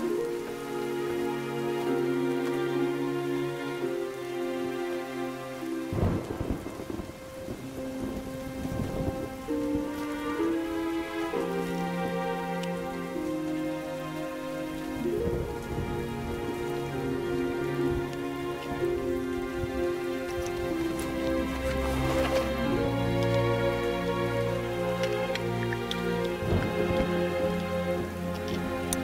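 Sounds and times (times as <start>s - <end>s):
slow music of held chords: 0.0s - 29.0s
steady rain: 0.0s - 29.0s
thunder rolling: 5.9s - 9.9s.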